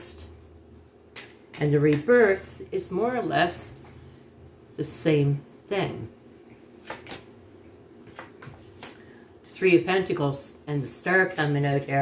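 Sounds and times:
cards snapping on table: 6.8 - 7.3.

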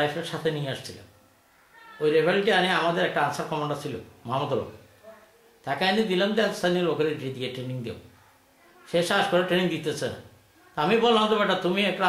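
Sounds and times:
man speaking: 0.0 - 1.1, 2.0 - 4.8, 5.6 - 8.1, 8.9 - 12.0.

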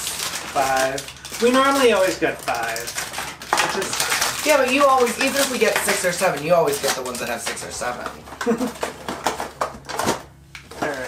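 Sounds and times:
toy packaging crinkling and clicking: 0.0 - 11.0.

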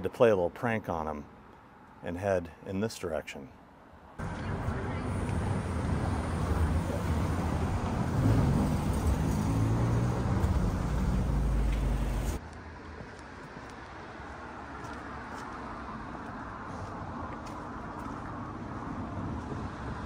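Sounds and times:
distant road traffic hum: 0.0 - 20.0.

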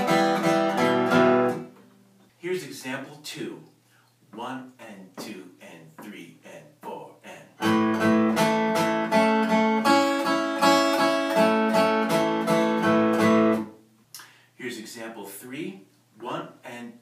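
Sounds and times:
acoustic guitar picked notes: 0.0 - 2.2, 7.6 - 13.9.

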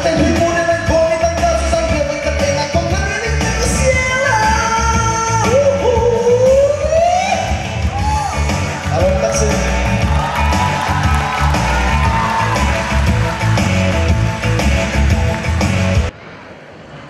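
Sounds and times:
man singing into a microphone: 0.0 - 7.6
band with a steady beat: 0.0 - 16.1.

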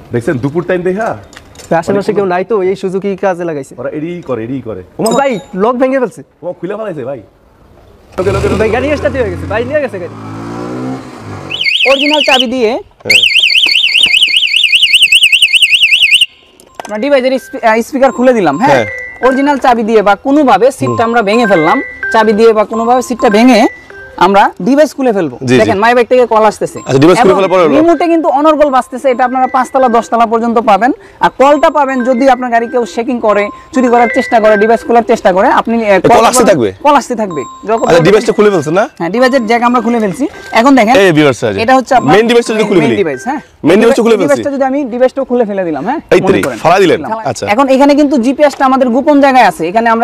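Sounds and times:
warbling alarm siren: 11.5 - 12.5, 13.1 - 16.5
electronic beep-like chime: 16.7 - 19.6, 20.8 - 24.3, 26.7 - 30.5, 31.4 - 35.2, 37.2 - 40.9, 41.7 - 43.4.

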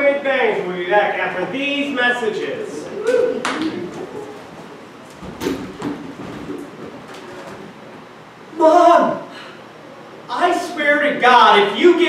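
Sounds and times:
chairs moved on wooden stage: 3.6 - 8.1.

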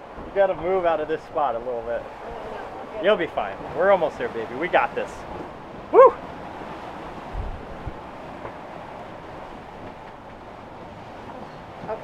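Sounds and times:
waves breaking: 0.0 - 12.0
wind rushing: 5.8 - 9.2.

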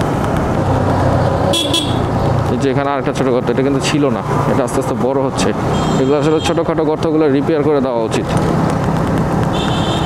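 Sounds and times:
motorcycle engine running: 0.0 - 2.9
man talking: 2.5 - 8.4.

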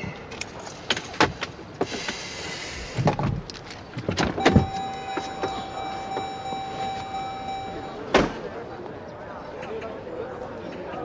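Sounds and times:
car door thump: 4.3 - 6.4, 8.1 - 8.4
high electronic tone: 4.4 - 8.0.

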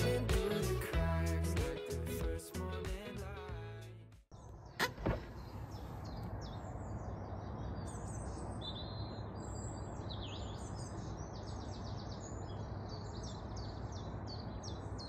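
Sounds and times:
small birds chirping and trilling: 4.3 - 15.0.

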